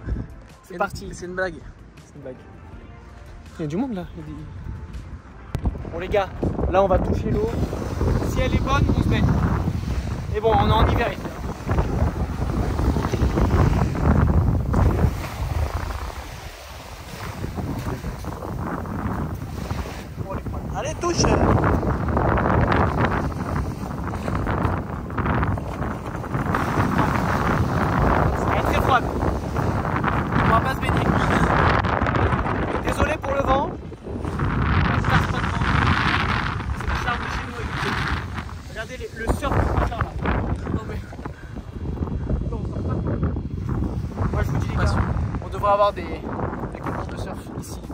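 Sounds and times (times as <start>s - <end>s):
wind buffeting microphone: 0.0s - 2.2s, 3.7s - 47.9s
small waves washing onto sand: 6.0s - 42.8s, 43.4s - 46.0s.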